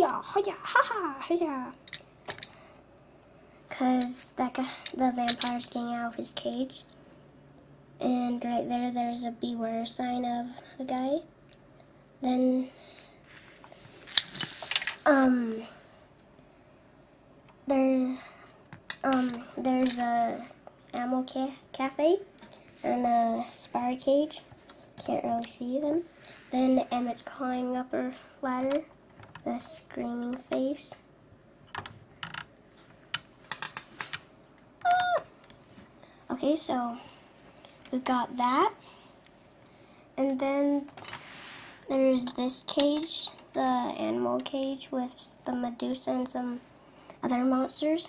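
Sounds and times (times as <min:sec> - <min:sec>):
plastic clicks: 0:14.1 - 0:15.0.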